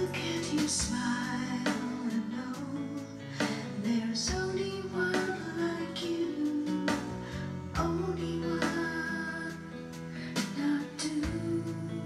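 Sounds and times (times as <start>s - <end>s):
woman singing a children's song: 0.0s - 7.2s, 7.8s - 9.8s, 10.4s - 12.0s
instrumental backing track: 0.0s - 12.0s.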